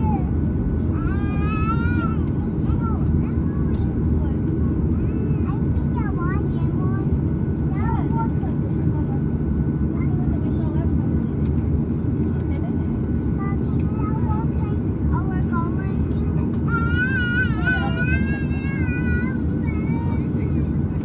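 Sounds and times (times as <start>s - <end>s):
jet engines idling: 0.0s - 21.0s
faint high-pitched voices: 12.5s - 21.0s.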